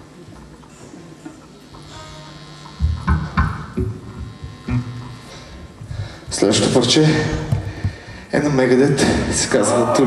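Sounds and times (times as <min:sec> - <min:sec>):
amplifier buzz: 0:01.3 - 0:08.1
low bass note: 0:01.7 - 0:07.5.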